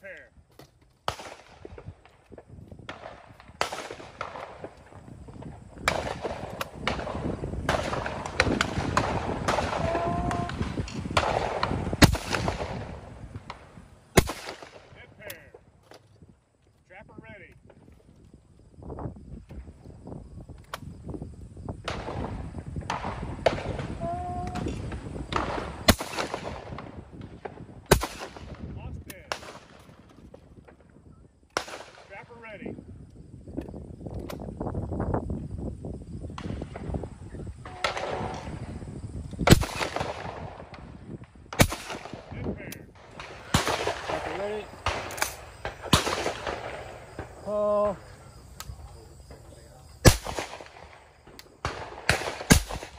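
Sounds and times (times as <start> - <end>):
shotgun shots: 1.0 - 1.9, 2.9 - 4.8, 5.8 - 15.5, 21.8 - 27.0, 27.6 - 30.0, 31.6 - 32.4, 37.7 - 38.7, 39.4 - 40.9, 41.5 - 47.4, 50.0 - 52.9.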